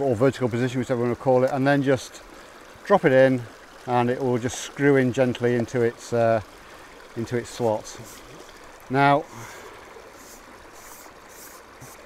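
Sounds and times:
river water flowing: 0.0s - 12.0s.

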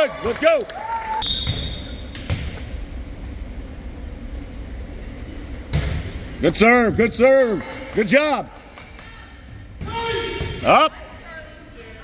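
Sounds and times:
low gym hum: 0.0s - 12.0s.

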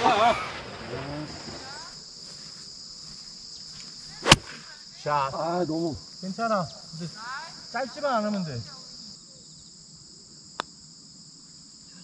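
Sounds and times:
insects droning: 0.0s - 12.0s
golf club striking ball: 4.2s - 4.6s.

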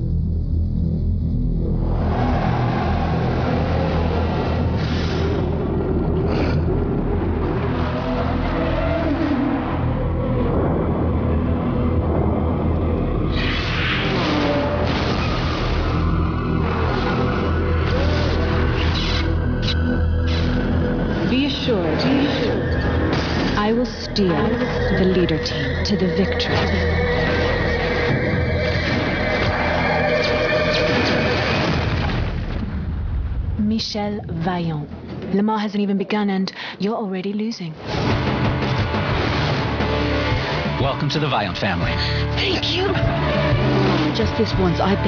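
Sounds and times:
racing car engines rumbling: 1.6s - 31.7s.

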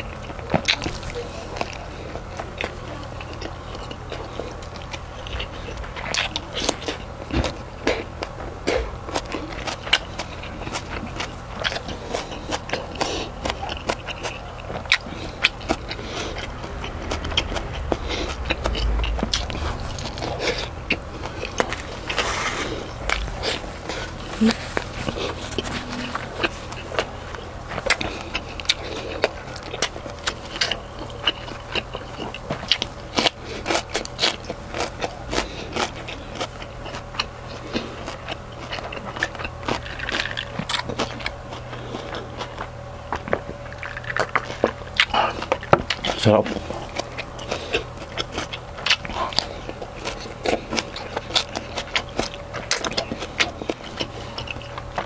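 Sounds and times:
chewing and biting food: 0.0s - 55.0s.

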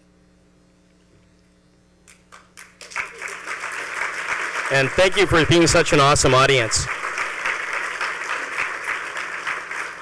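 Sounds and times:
low electrical hum: 0.0s - 10.0s
audience clapping: 2.1s - 10.0s.

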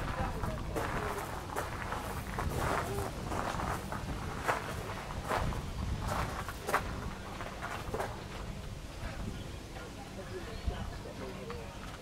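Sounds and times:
footsteps on gravel: 0.0s - 9.2s.

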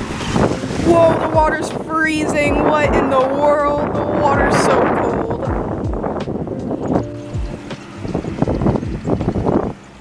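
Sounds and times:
small waves washing ashore: 0.0s - 10.0s
wind buffeting microphone: 0.0s - 10.0s.

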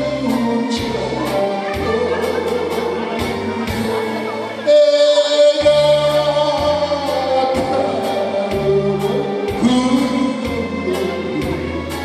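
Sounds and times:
instrumental accompaniment with bass: 0.0s - 12.0s
man singing into a microphone: 0.0s - 12.0s.

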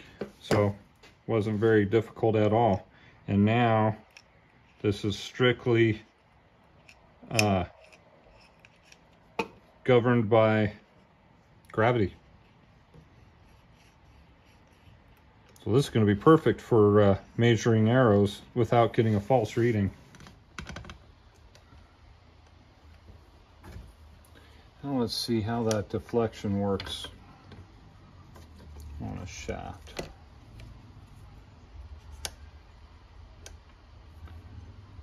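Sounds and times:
man speaking: 0.3s - 4.0s, 4.8s - 6.1s, 7.2s - 7.8s, 9.8s - 10.8s, 11.7s - 12.2s, 15.6s - 20.0s, 24.8s - 27.2s, 28.9s - 30.1s.

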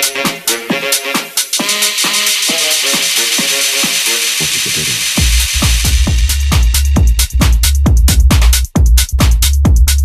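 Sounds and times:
hissing noise wash: 1.4s - 6.8s
synth chord stabs: 1.4s - 7.0s
low bass notes: 4.5s - 10.0s.

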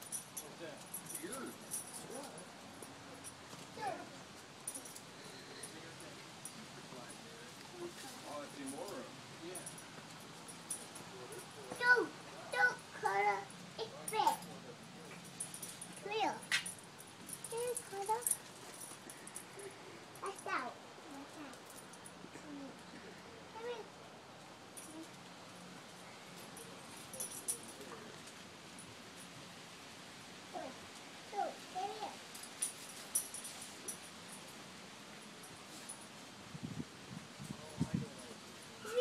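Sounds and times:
tag jingling: 0.0s - 6.6s, 8.3s - 20.6s.

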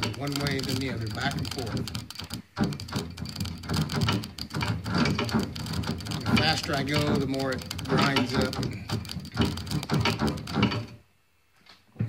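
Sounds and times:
motor grinding: 0.0s - 10.9s.

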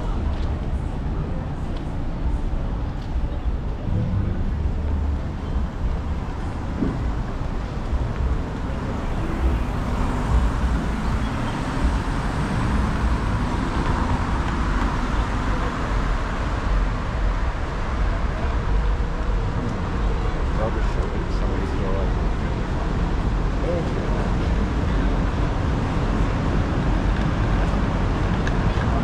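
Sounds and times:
road traffic noise: 0.0s - 29.0s.

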